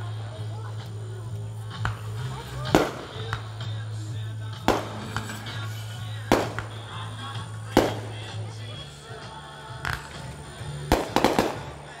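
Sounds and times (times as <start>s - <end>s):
faint fireworks pops: 0.8s - 8.5s, 9.7s - 12.0s
fireworks booming: 1.7s - 8.4s, 9.8s - 12.0s.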